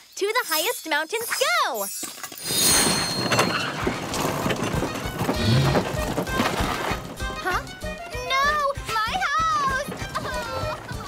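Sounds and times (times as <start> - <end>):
knocks and clatter: 2.0 - 11.0.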